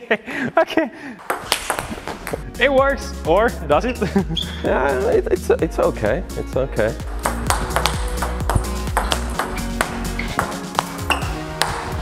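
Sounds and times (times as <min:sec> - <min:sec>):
background music: 0:00.2 - 0:12.0
table tennis ball clicking: 0:01.2 - 0:02.4, 0:07.2 - 0:11.8.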